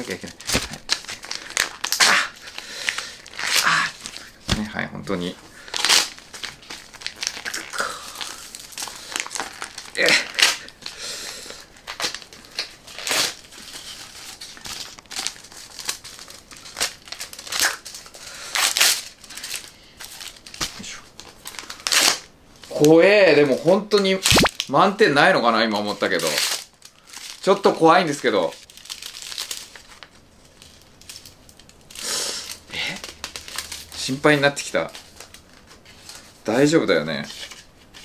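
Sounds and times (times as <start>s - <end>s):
paper crinkling: 0.0s - 24.7s, 25.5s - 38.0s
paper tearing: 3.3s - 4.6s, 7.0s - 17.9s, 24.2s - 24.6s.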